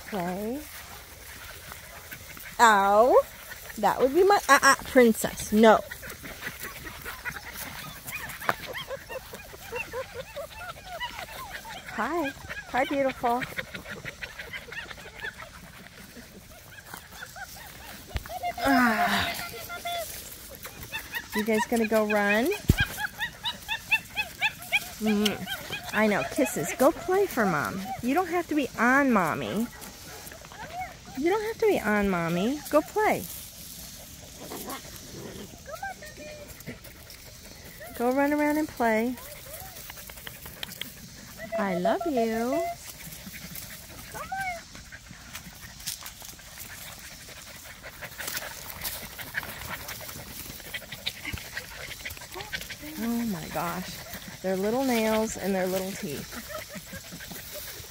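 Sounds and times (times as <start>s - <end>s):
puppies whining and yipping: 0.0s - 57.9s
puppy yipping: 6.5s - 15.6s, 16.4s - 27.0s.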